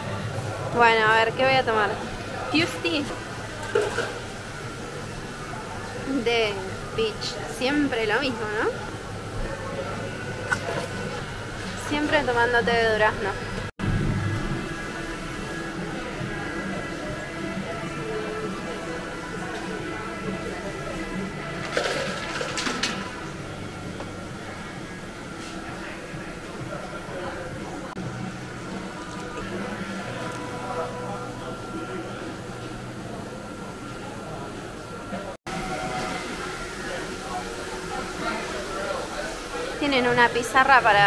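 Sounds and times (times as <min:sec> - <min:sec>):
indistinct background chatter: 0:00.0 - 0:13.7, 0:14.5 - 0:41.0
steady background noise: 0:00.0 - 0:41.0
soda fountain dispensing into cup: 0:03.5 - 0:05.7, 0:21.5 - 0:23.3, 0:28.6 - 0:30.9
steady low hum: 0:04.3 - 0:35.4.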